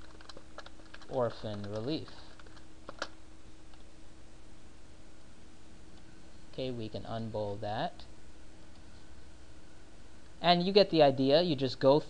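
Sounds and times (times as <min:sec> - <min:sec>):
computer keyboard keystrokes: 0:00.0 - 0:03.8
faint steady hum: 0:00.0 - 0:12.0.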